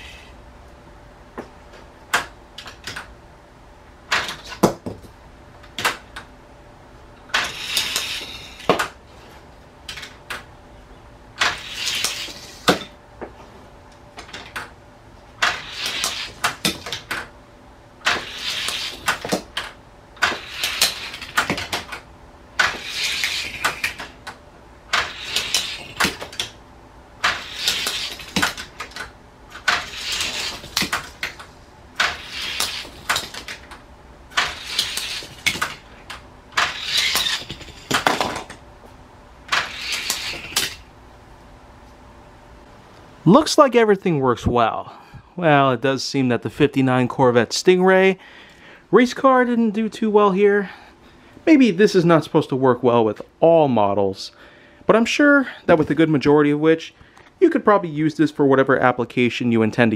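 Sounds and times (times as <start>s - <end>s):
toy cars rattling down plastic track: 7.4s - 8.7s, 11.4s - 12.8s, 18.0s - 19.4s, 20.2s - 21.9s, 22.6s - 24.1s, 24.9s - 26.5s, 27.2s - 29.0s, 29.6s - 31.4s, 32.0s - 33.6s, 34.4s - 35.8s, 36.6s - 38.6s, 39.5s - 40.8s.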